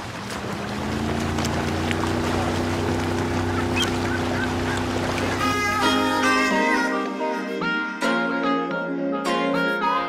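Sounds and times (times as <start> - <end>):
water: 0.0 - 7.5
steady low drone: 0.1 - 6.4.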